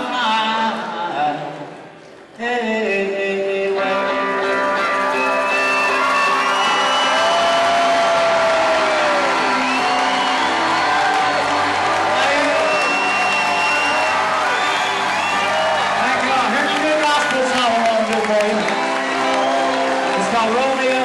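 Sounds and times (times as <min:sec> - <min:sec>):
live band playing country music: 0:02.4 - 0:21.0
audience cheering and whistling: 0:04.8 - 0:21.0.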